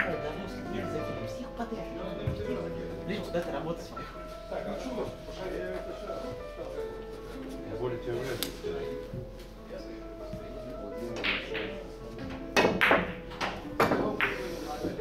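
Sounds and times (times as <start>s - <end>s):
background music: 0.0s - 15.0s
billiard balls clacking: 11.1s - 15.0s.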